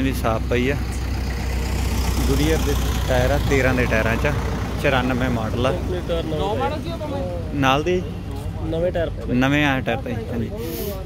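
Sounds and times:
tractor diesel engine idling: 0:00.0 - 0:11.0.

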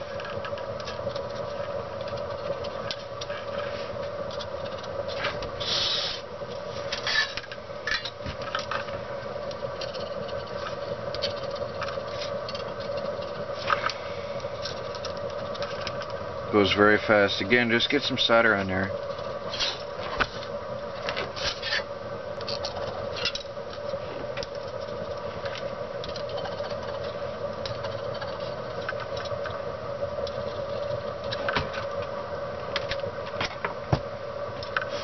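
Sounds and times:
steady hum: 0:00.0 - 0:35.0
soldering iron scratching and clicking: 0:00.3 - 0:03.3, 0:09.4 - 0:16.2, 0:23.7 - 0:29.6
short hiss: 0:05.6 - 0:06.2.

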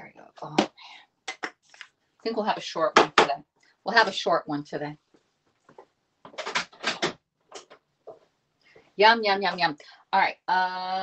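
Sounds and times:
kitchen items knocking and clattering: 0:06.3 - 0:08.2.

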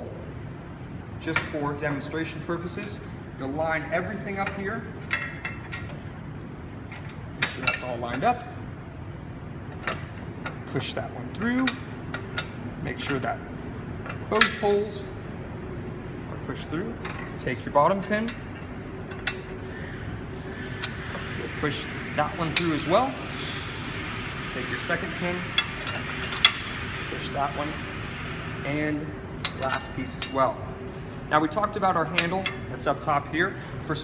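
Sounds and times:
low background hum: 0:00.0 - 0:34.0.

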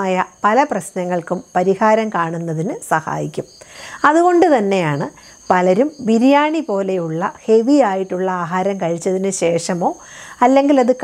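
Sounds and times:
crickets trilling: 0:00.0 - 0:11.0
woman speaking: 0:00.0 - 0:11.0.

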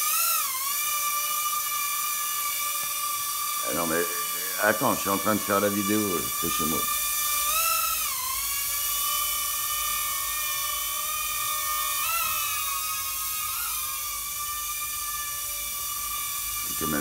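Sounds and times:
toy drone high whine: 0:00.0 - 0:17.0.

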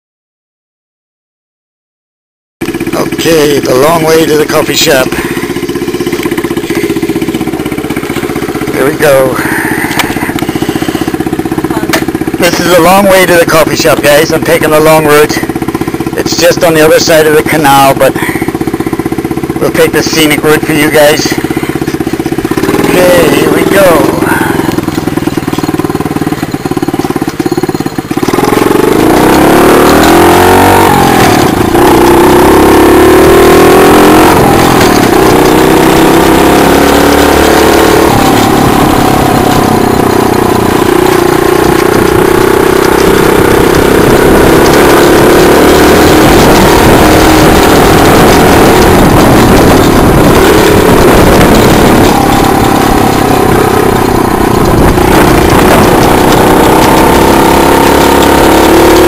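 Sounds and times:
small engine running: 0:02.6 - 0:59.0
wind and road noise: 0:02.6 - 0:59.0.

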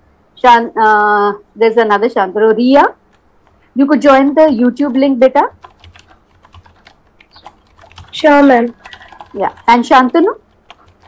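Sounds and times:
keyboard typing clicks: 0:04.3 - 0:11.0.

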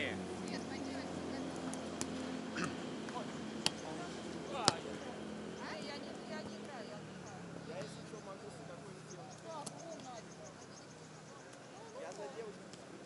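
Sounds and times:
faint distant voices: 0:00.0 - 0:13.0
hands slapping volleyball: 0:01.6 - 0:02.2, 0:03.0 - 0:03.8, 0:04.6 - 0:05.0.

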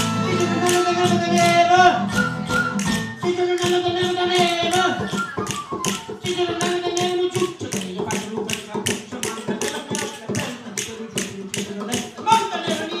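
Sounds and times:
flute melody: 0:00.0 - 0:07.7
guitar: 0:00.0 - 0:13.0
sharp percussive beat: 0:00.0 - 0:13.0.

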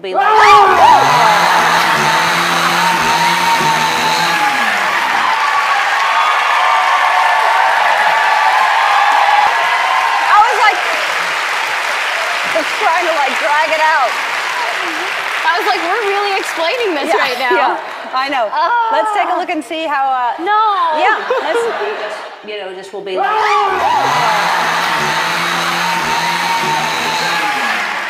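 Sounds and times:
audience screaming: 0:00.1 - 0:12.5, 0:23.2 - 0:28.0
chainsaw engine running: 0:00.4 - 0:05.4, 0:23.5 - 0:28.0
audience applause: 0:00.4 - 0:18.2, 0:23.4 - 0:28.0
audience laughter: 0:21.0 - 0:22.4.

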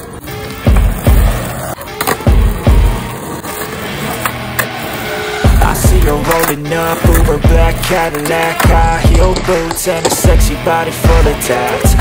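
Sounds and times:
skateboard rolling on concrete: 0:00.0 - 0:12.0
music with thumping bass drum: 0:05.5 - 0:06.4, 0:07.0 - 0:12.0.

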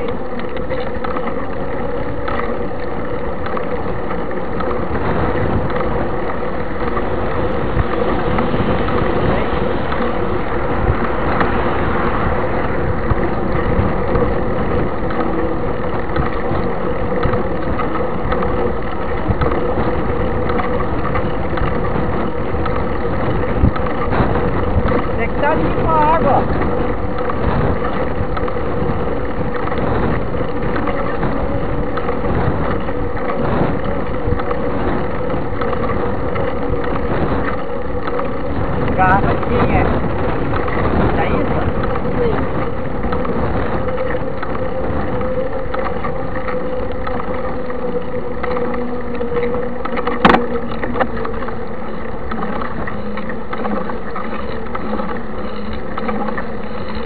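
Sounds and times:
bike rumbling on asphalt: 0:00.0 - 0:57.0
constant hum: 0:00.0 - 0:57.0
wind buffeting microphone: 0:00.0 - 0:57.0.

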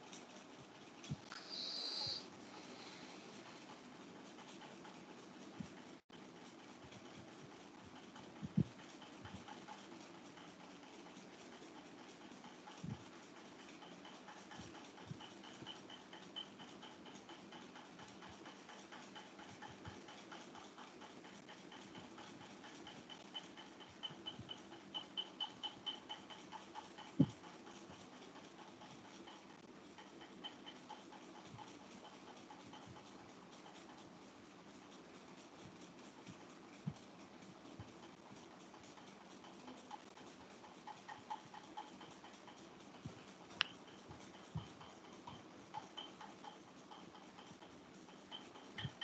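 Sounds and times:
faint high-pitched chirping: 0:01.3 - 0:02.2.

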